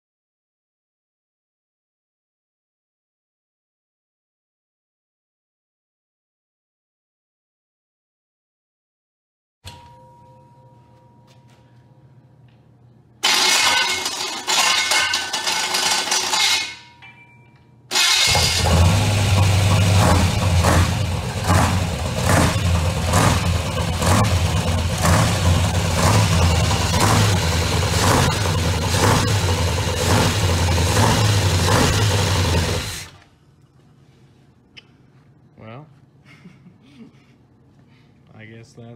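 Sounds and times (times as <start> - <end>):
engine cranking: 13.2 - 16.8, 17.9 - 33.2
car engine running: 18.1 - 33.1.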